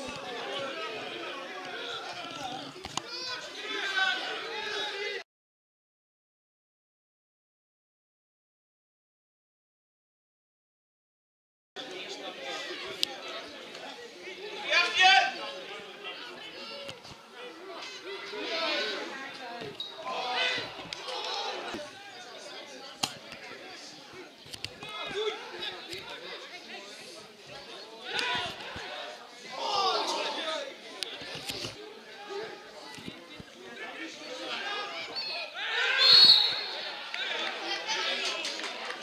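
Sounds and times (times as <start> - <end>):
players shouting: 0.0 - 5.2, 14.4 - 24.0, 28.0 - 31.2, 33.8 - 39.0
loud shout: 29.5 - 30.6, 34.5 - 39.0.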